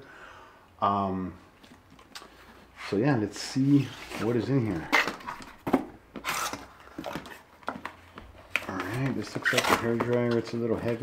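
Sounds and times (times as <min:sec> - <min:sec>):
cardboard scraping: 0:02.4 - 0:07.5.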